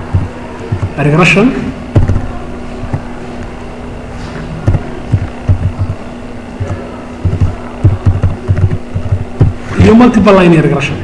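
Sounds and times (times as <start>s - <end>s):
computer keyboard typing: 0.0s - 1.0s, 2.0s - 3.1s, 4.6s - 6.0s, 6.6s - 9.6s
low electrical hum: 0.0s - 11.0s.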